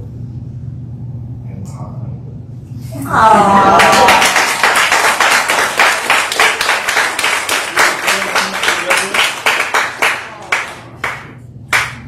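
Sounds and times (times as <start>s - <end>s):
hand clapping: 3.7s - 12.0s.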